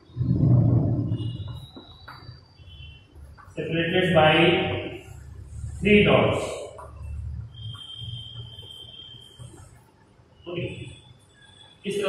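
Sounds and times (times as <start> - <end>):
thin high-pitched whine: 0.0 - 12.0.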